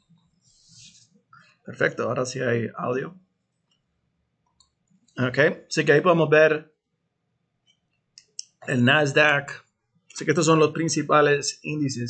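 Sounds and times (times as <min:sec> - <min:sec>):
computer mouse click: 0:04.5 - 0:05.1.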